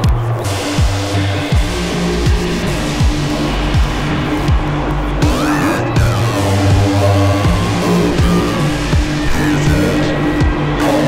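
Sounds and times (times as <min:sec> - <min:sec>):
drum hits: 0:00.0 - 0:10.8
deep bass notes: 0:00.0 - 0:11.0
sliding synth sweeps: 0:00.0 - 0:11.0.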